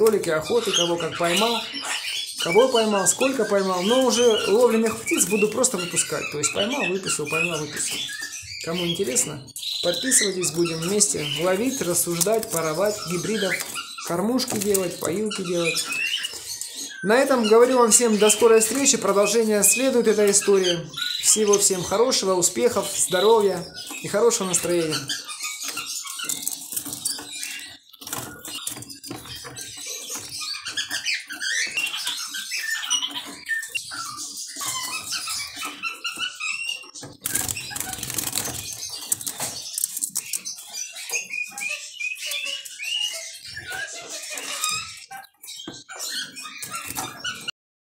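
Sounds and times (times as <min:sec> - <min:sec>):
bird hopping on perches and mesh: 0:00.0 - 0:47.5
bird chirping calls: 0:00.0 - 0:47.6.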